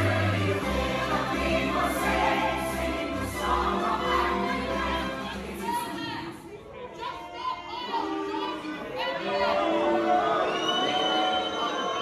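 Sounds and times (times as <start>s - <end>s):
music or singing: 0.0s - 6.6s
audience shouting in echoing hall: 5.8s - 12.0s.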